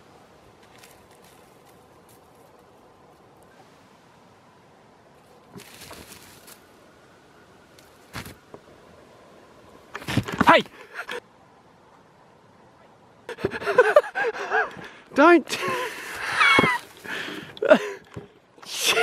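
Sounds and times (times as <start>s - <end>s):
rustling in grass: 0.0s - 4.2s, 5.0s - 7.0s, 15.7s - 17.6s.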